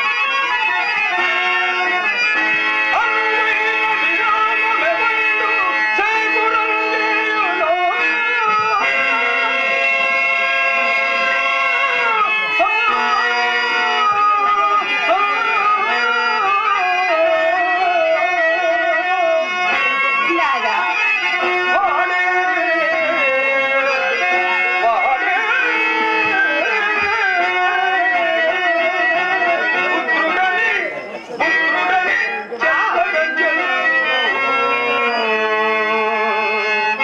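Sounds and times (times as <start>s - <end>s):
harmonium: 0.0s - 37.0s
man singing: 0.0s - 37.0s.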